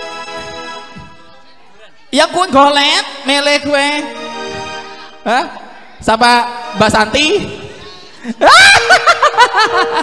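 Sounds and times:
person laughing into microphone: 0:08.2 - 0:10.0.

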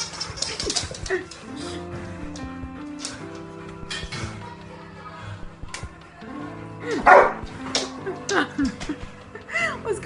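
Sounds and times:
dog barking excitedly: 0:07.0 - 0:07.4.

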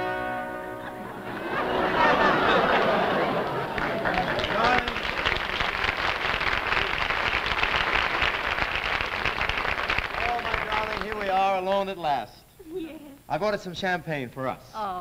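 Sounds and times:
audience laughing: 0:00.7 - 0:05.9
audience applauding: 0:00.9 - 0:11.7.

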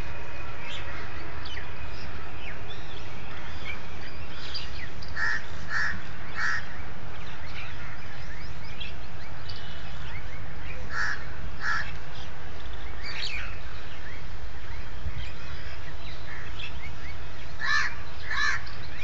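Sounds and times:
bird giving loud calls: 0:10.9 - 0:11.9.

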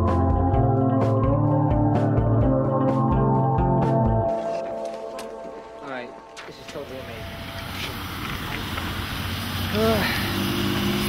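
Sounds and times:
heavy rain pouring: 0:07.0 - 0:11.0.

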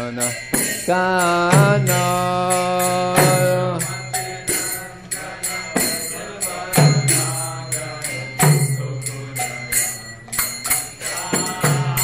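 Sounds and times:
hand cymbals ringing: 0:00.0 - 0:12.0
voices chanting: 0:00.0 - 0:12.0.

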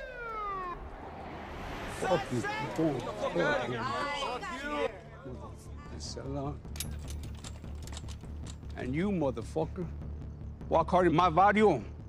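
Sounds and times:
police siren whoop: 0:00.0 - 0:04.2.

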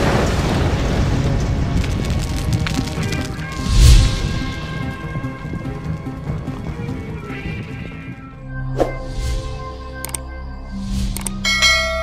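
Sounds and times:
background music: 0:00.2 - 0:12.0
bright bell chime: 0:11.4 - 0:12.0.

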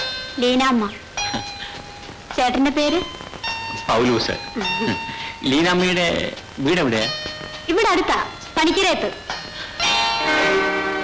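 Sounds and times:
bell-like tones ringing: 0:00.0 - 0:02.2, 0:02.8 - 0:11.0.

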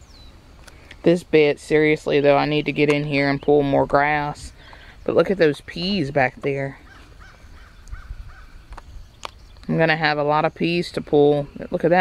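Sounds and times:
bird calling: 0:00.0 - 0:12.0.

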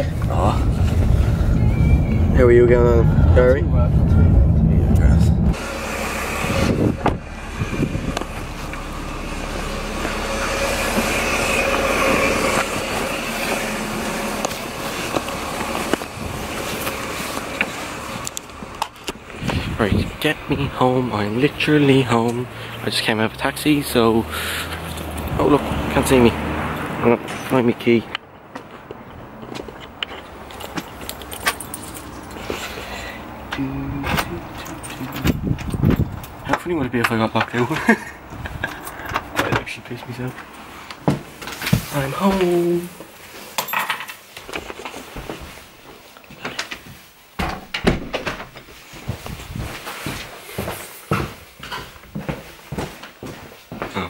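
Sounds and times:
car engine running: 0:00.0 - 0:26.4
keys jingling: 0:30.1 - 0:32.5.

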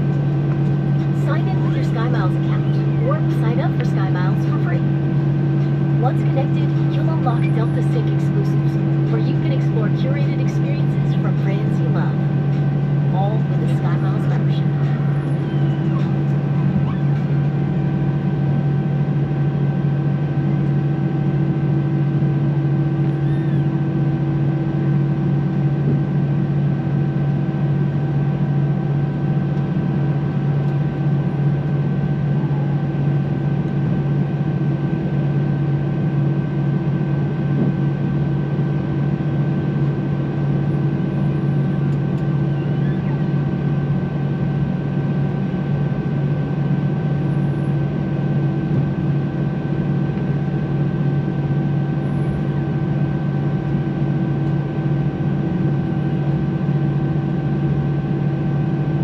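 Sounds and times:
airliner cabin hum: 0:00.0 - 0:59.0.

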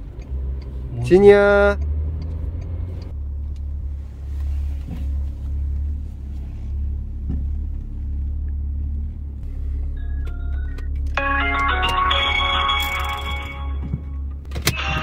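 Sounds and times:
car engine rumble inside cabin: 0:00.0 - 0:12.1, 0:12.7 - 0:15.0.

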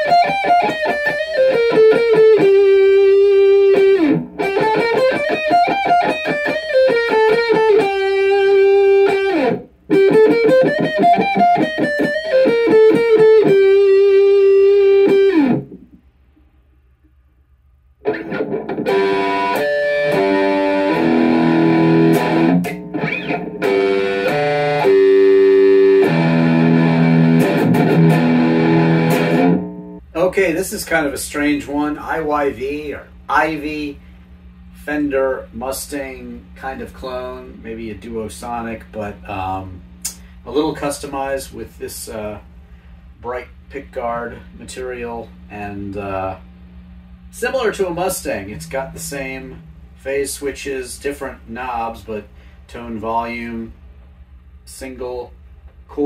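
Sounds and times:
electric guitar chords: 0:00.0 - 0:16.0, 0:18.0 - 0:30.1, 0:43.9 - 0:52.6
electric guitar riff: 0:00.0 - 0:16.0, 0:18.0 - 0:30.1, 0:42.8 - 0:52.6.

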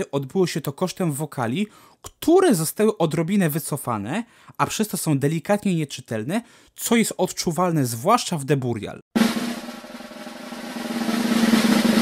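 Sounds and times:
snare drum roll: 0:09.2 - 0:12.0.

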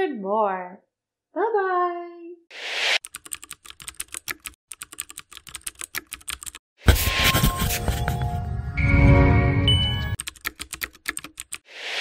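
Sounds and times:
computer keyboard typing clicks: 0:03.0 - 0:06.6, 0:10.2 - 0:11.6.

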